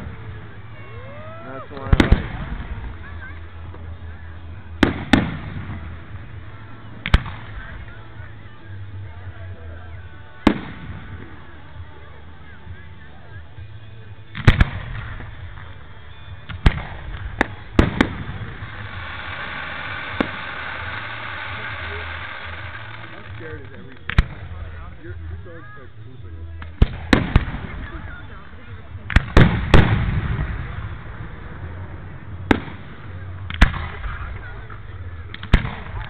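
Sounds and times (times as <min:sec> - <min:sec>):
fireworks bursting: 0:00.0 - 0:36.0.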